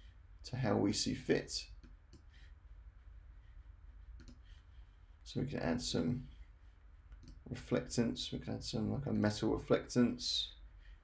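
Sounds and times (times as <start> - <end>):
low steady hum: 0.0 - 11.0
computer mouse click: 4.2 - 4.4, 7.1 - 7.5.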